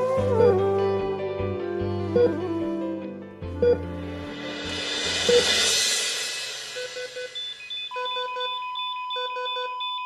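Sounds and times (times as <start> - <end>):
monitor alarm beeps: 6.8 - 10.0
patient monitor steady tone: 6.8 - 10.0.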